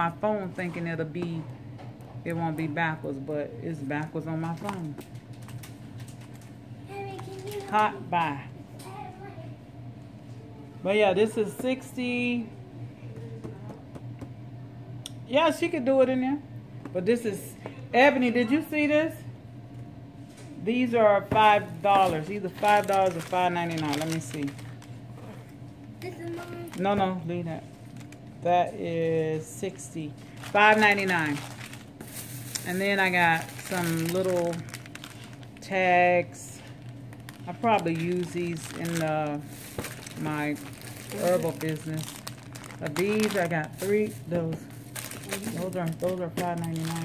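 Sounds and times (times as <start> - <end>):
low steady hum: 0.0 - 47.0
cellophane crinkling: 4.0 - 8.1, 21.5 - 26.9, 27.6 - 28.3, 30.0 - 47.0.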